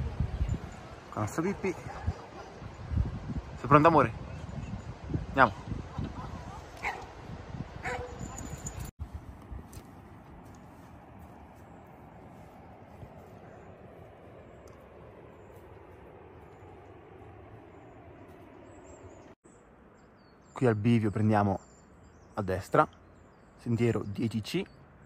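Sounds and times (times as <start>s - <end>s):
faint outdoor background hiss: 0.0s - 25.0s
dog yipping: 7.8s - 8.8s.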